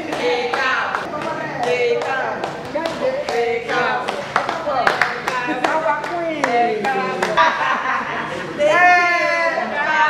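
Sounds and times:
hand clapping: 0.0s - 7.5s
women's voices: 0.0s - 10.0s.

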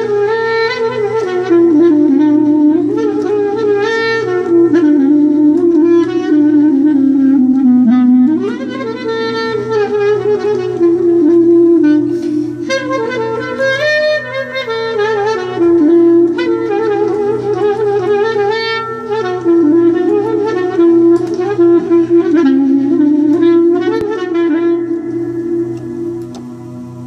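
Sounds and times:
clarinet playing ornamented melody: 0.0s - 27.0s
pulsing low accompaniment: 0.0s - 27.0s.

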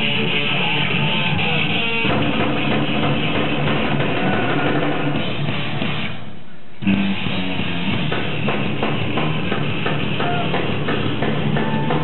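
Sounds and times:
thrash metal band playing: 0.0s - 6.2s, 6.8s - 12.0s.

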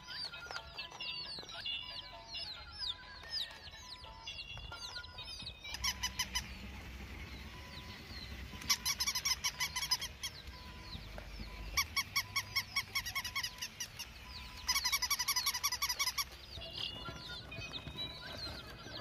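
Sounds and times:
faint bird chirps: 1.2s - 19.0s.

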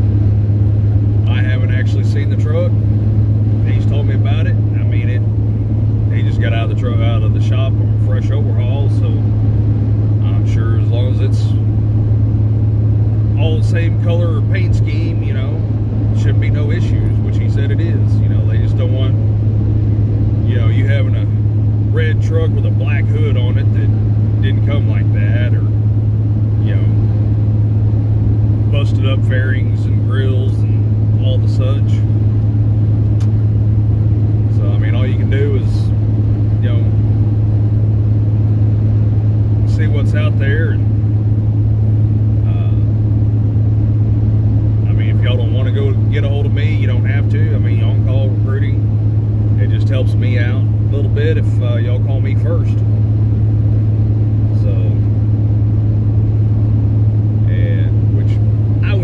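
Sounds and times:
road noise: 0.0s - 59.0s
truck engine drone: 0.0s - 59.0s.

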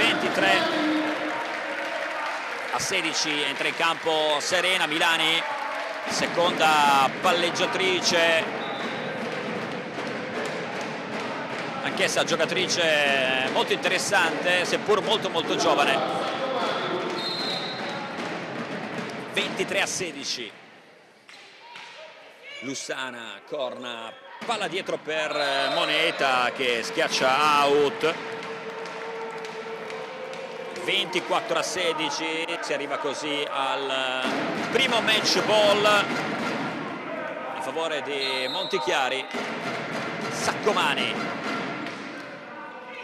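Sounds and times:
indoor sports hall background noise: 0.0s - 43.0s
murmur of crowd and players: 0.0s - 43.0s.

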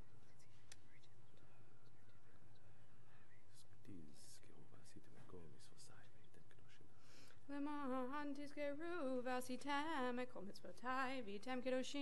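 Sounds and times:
person whispering a prayer: 0.0s - 7.2s.

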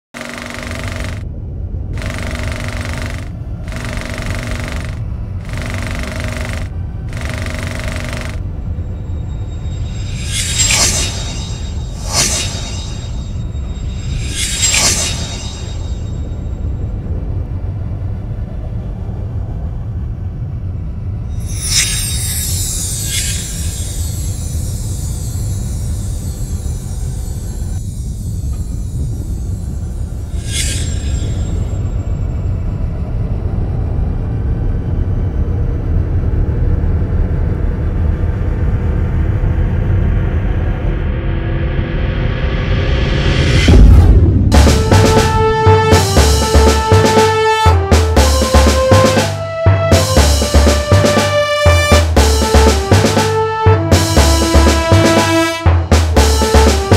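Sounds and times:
rattling machine-like bursts: 0.2s - 1.2s, 1.9s - 8.5s
steady low rumble: 0.3s - 56.9s
whoosh: 9.4s - 16.8s.

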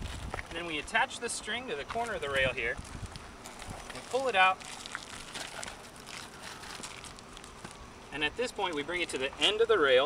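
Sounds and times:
faint rustling: 1.8s - 9.5s.

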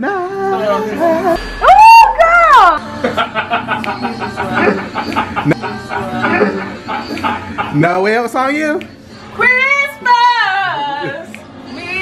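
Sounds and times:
woman laughing: 3.0s - 7.8s.

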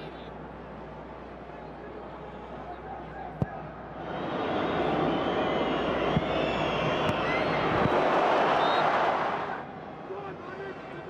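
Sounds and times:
stadium crowd noise: 0.0s - 11.0s
whistles: 4.0s - 9.1s.

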